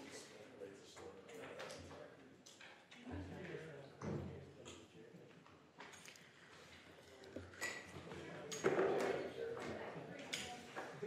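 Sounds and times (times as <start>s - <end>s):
indistinct voices in large hall: 0.0s - 11.0s.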